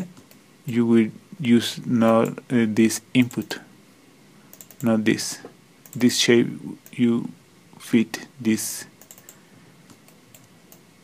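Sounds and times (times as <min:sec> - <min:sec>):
low room noise: 0:00.0 - 0:11.0
mouse and keyboard clicking: 0:04.5 - 0:04.9, 0:09.0 - 0:10.8.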